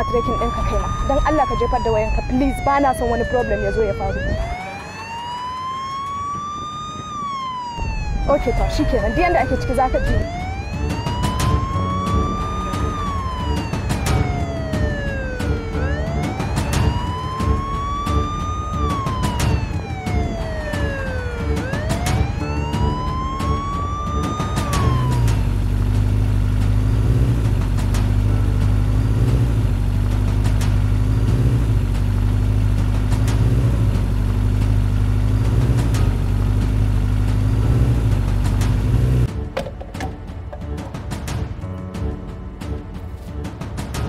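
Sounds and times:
emergency vehicle siren wailing: 0:00.0 - 0:32.2
low droning music: 0:00.0 - 0:44.0.

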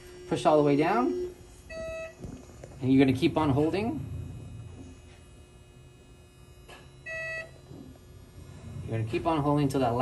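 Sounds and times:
x-ray exposure beep: 0:00.0 - 0:10.0.

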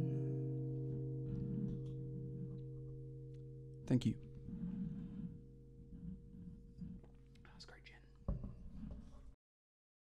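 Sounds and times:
breathy mouth sounds: 0:01.2 - 0:03.0, 0:04.2 - 0:09.0.

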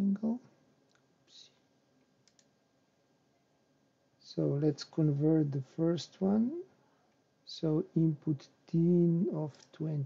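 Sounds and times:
computer mouse clicks: 0:02.2 - 0:02.5.

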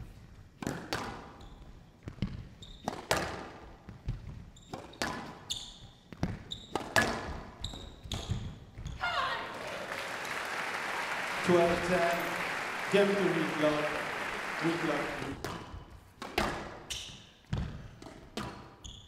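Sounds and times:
shoes squeaking on court floor: 0:01.3 - 0:03.2, 0:03.8 - 0:09.4, 0:16.8 - 0:19.0
crowd applauding: 0:09.0 - 0:15.4.

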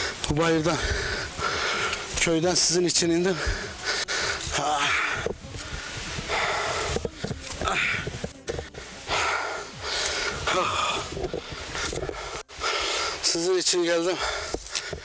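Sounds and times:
man panting heavily: 0:00.0 - 0:15.0.

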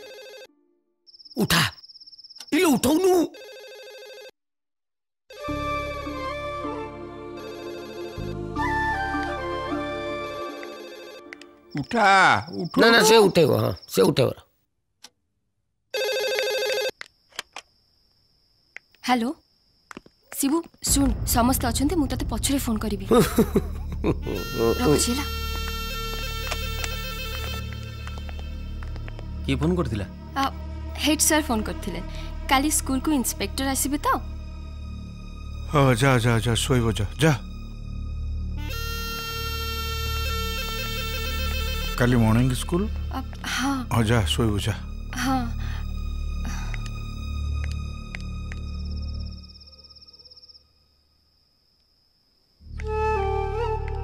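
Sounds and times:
telephone ringing: 0:00.0 - 0:00.6, 0:03.3 - 0:04.4, 0:15.9 - 0:17.0.

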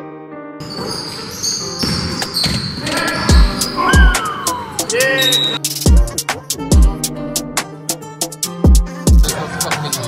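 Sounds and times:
piano music: 0:00.0 - 0:09.2
basketball bouncing on court: 0:00.6 - 0:04.1
shoe squeaks: 0:00.6 - 0:05.6.

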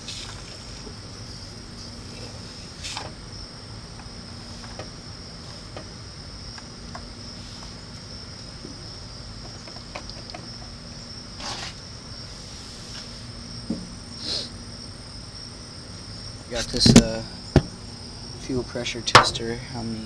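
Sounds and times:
crickets chirping: 0:00.0 - 0:20.0
short hisses: 0:14.2 - 0:14.5.

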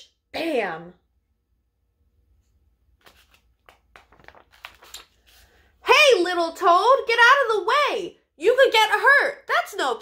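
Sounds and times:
paper pages being turned: 0:02.8 - 0:05.8.

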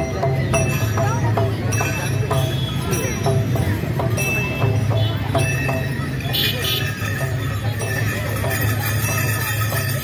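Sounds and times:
crowd voices: 0:00.0 - 0:10.0.

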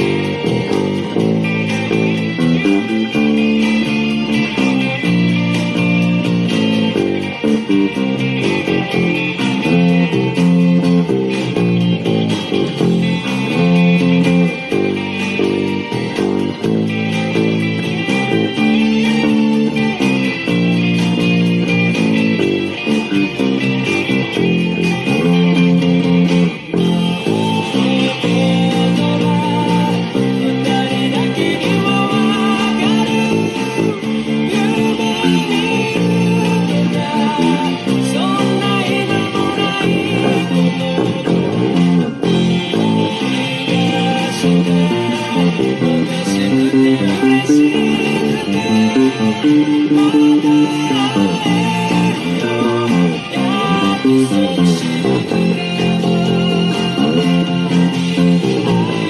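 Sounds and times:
electric bass playing: 0:00.0 - 0:59.0
strummed electric guitars: 0:00.0 - 0:59.0.

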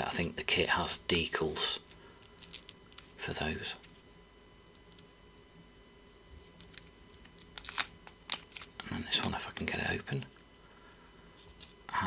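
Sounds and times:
plastic bag crinkling: 0:06.5 - 0:08.8.

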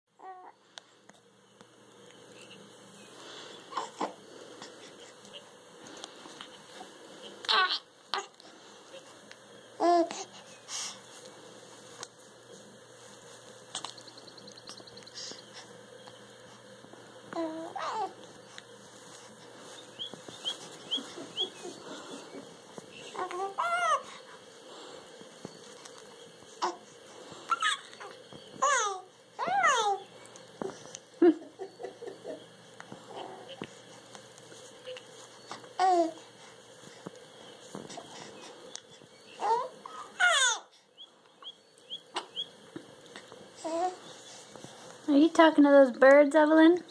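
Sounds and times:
infant cooing: 0:03.7 - 0:05.5, 0:07.4 - 0:09.1, 0:09.8 - 0:10.4, 0:17.3 - 0:18.2, 0:20.7 - 0:24.2, 0:27.5 - 0:30.1, 0:33.1 - 0:33.7, 0:35.8 - 0:36.2, 0:39.4 - 0:40.7, 0:43.6 - 0:44.1
bird chirping: 0:13.8 - 0:16.3, 0:19.7 - 0:23.4, 0:39.1 - 0:39.5, 0:40.9 - 0:42.6.

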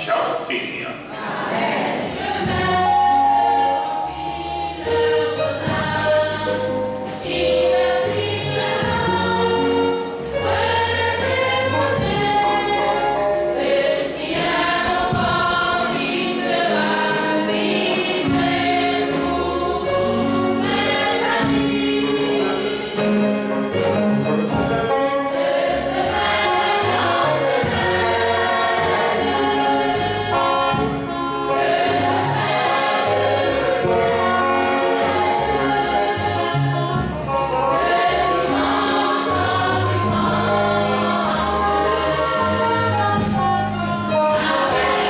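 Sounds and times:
choir singing a hymn: 0:00.0 - 0:45.0
instrumental accompaniment: 0:00.0 - 0:45.0.

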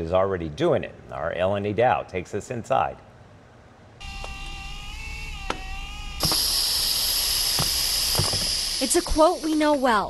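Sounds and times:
buzzing machine whine: 0:04.0 - 0:10.0.

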